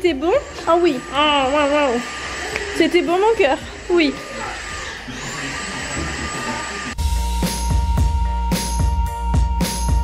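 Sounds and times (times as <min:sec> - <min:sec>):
vacuum cleaner running: 0:00.0 - 0:07.0.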